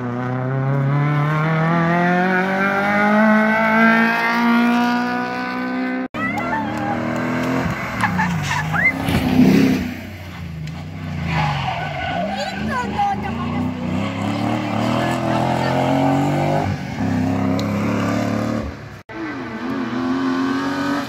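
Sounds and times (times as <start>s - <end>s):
rally car engine revving: 0.0s - 21.0s
tyre squeal: 8.1s - 13.2s.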